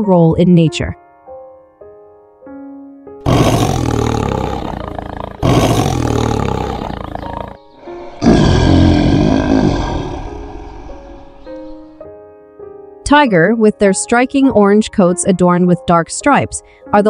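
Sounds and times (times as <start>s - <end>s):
soft piano music: 0.0s - 3.2s, 10.2s - 17.0s
tiger roaring: 3.2s - 11.9s.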